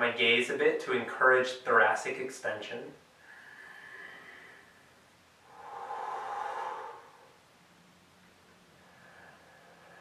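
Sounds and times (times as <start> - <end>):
man breathing: 3.2 - 7.5, 8.7 - 10.0.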